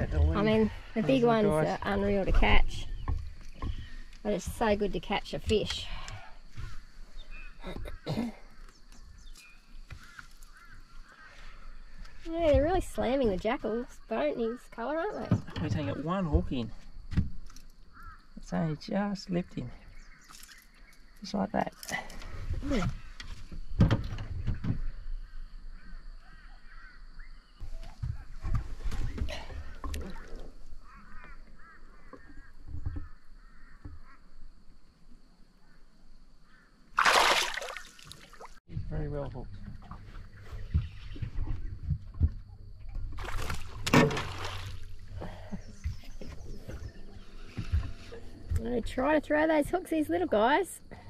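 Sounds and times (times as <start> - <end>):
knocks and handling in boat: 22.2 - 25.0, 27.6 - 34.1, 39.4 - 49.4
fish splashing in water: 36.9 - 38.6, 43.1 - 45.2.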